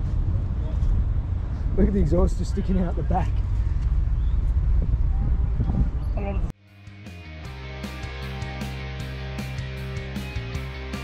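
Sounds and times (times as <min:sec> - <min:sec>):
background music with guitar: 0:06.6 - 0:11.0.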